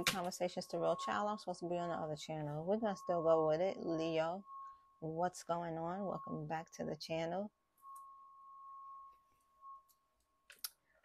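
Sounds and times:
faint steady ringing tone: 0.0 - 11.0.

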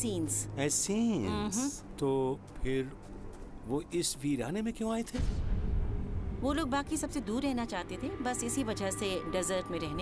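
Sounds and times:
person speaking: 1.1 - 1.9.

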